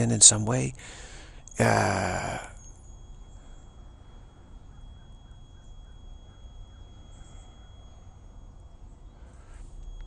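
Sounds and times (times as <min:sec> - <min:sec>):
faint high-pitched tones: 0:00.0 - 0:10.0
steady low rumble: 0:00.0 - 0:10.0.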